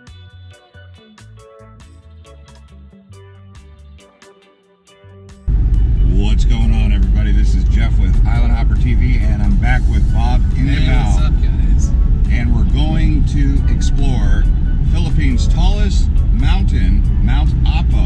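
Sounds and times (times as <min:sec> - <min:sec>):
car cabin road and engine rumble: 0:05.5 - 0:18.0.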